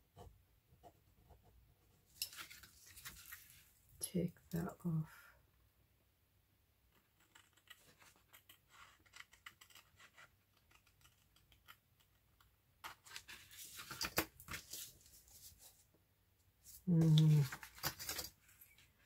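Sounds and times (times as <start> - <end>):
paper rustling: 2.2 - 3.8, 12.8 - 15.8, 16.7 - 19.0.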